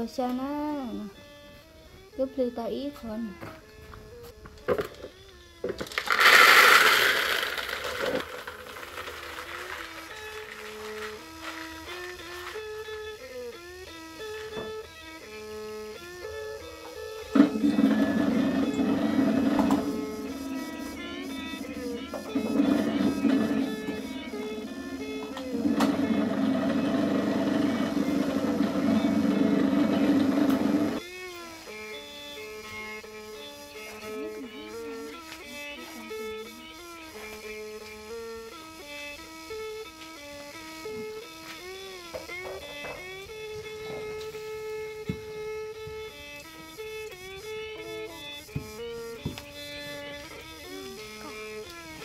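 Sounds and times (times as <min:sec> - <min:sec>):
background music: 0:00.0 - 0:07.8, 0:08.7 - 0:31.0
electric grain mill running: 0:03.4 - 0:52.0
corn kernels pouring into bucket: 0:05.8 - 0:12.7, 0:17.3 - 0:31.0.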